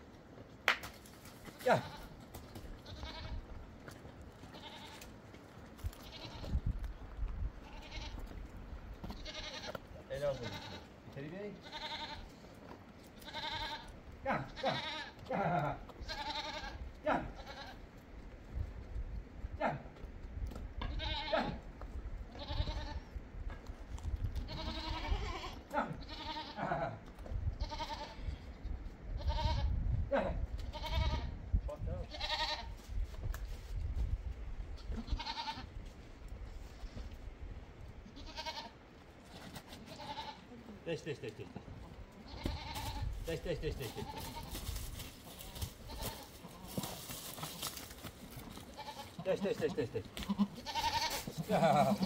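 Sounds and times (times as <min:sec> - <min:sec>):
goats bleating: 0:01.4 - 0:03.6, 0:04.4 - 0:06.6, 0:07.6 - 0:18.0, 0:20.8 - 0:21.7, 0:22.3 - 0:23.1, 0:24.4 - 0:29.7, 0:30.6 - 0:31.4, 0:32.0 - 0:32.8, 0:34.8 - 0:35.8, 0:38.0 - 0:38.8, 0:39.8 - 0:47.8, 0:48.4 - 0:52.0.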